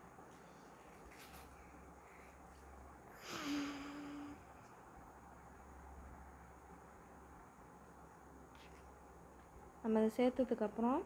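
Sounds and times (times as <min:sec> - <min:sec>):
breathy sigh with hum: 0:03.1 - 0:04.6.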